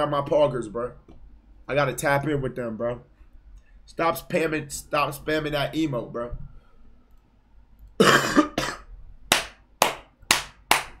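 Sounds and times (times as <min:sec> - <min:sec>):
hand claps: 0:09.3 - 0:11.0.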